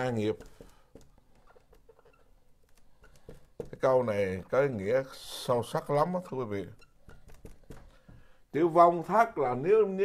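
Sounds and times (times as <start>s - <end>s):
marker scratching on whiteboard: 0.1s - 4.0s, 6.5s - 8.2s.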